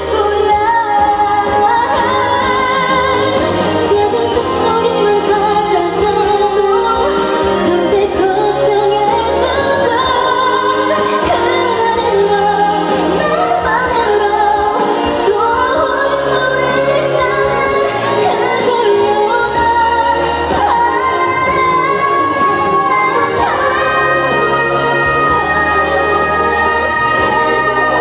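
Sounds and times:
woman singing pop song: 0.0s - 28.0s.

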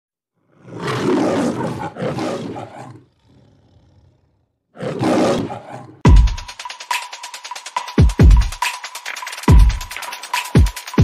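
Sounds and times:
lion roaring: 0.4s - 6.0s.

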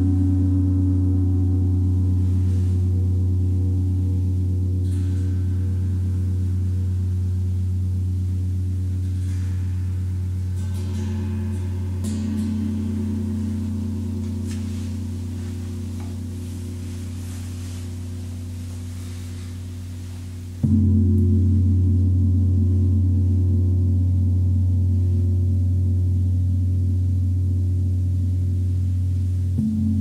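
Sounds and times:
gong ringing: 8.6s - 23.4s
bright gong overtone: 8.9s - 23.9s.

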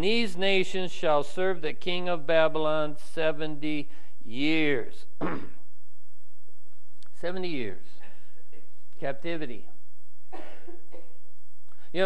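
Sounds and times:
man coughing: 5.2s - 5.6s, 8.0s - 8.8s, 10.3s - 11.2s.

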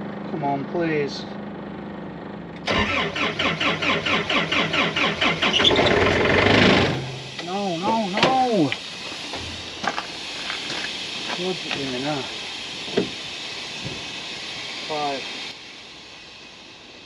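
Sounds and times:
engine catching with a burst: 0.2s - 17.0s
diesel engine cranking: 1.4s - 17.0s.

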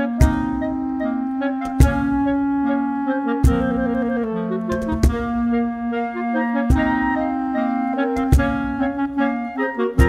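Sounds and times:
clarinets playing a march: 0.0s - 10.0s
deep cajon strikes: 0.2s - 2.7s, 3.4s - 5.8s, 6.7s - 7.4s, 8.2s - 9.2s.

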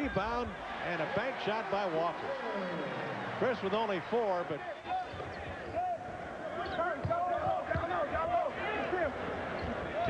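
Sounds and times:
basketball bouncing on hardwood: 7.0s - 8.0s.

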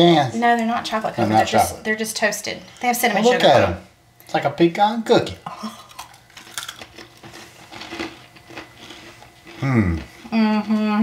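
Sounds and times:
crunchy nuts being chewed: 5.7s - 10.3s.

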